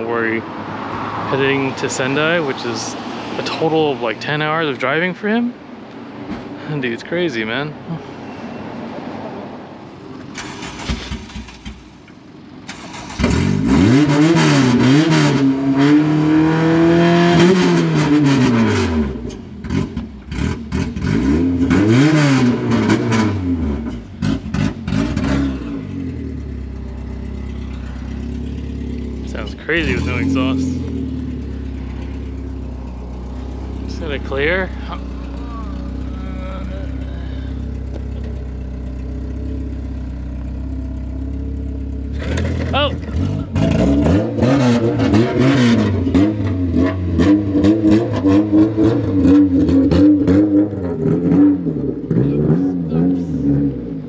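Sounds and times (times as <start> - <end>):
car engine revving and idling: 9.6 - 54.0.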